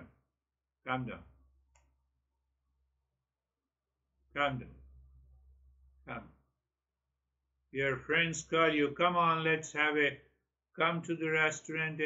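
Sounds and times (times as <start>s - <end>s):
man's voice: 4.4s - 4.8s, 7.8s - 10.2s, 10.8s - 12.0s.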